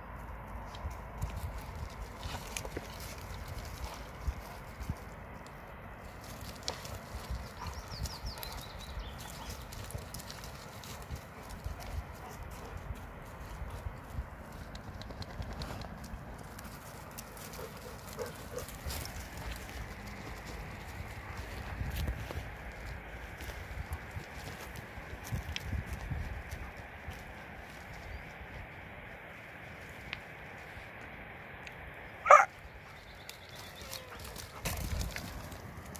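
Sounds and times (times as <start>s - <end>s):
dogs running on gravel: 0.8s - 28.8s, 32.3s - 35.9s.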